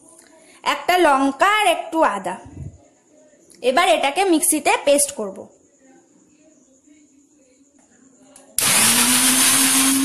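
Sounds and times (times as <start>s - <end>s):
mixer grinder motor whirring: 8.6s - 10.0s.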